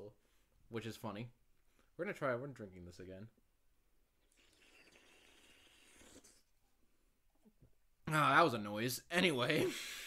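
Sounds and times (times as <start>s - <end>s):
person drinking from a can: 4.2s - 6.5s.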